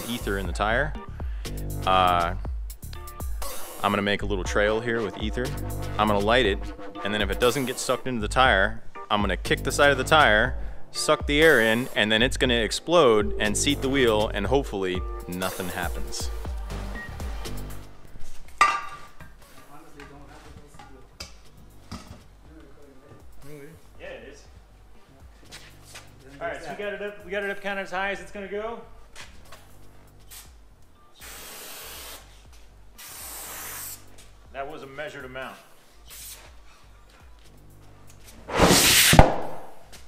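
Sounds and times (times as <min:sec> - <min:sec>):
music: 0:00.0 - 0:40.0
aerosol can hiss: 0:31.2 - 0:32.4, 0:33.0 - 0:34.1, 0:38.5 - 0:39.3.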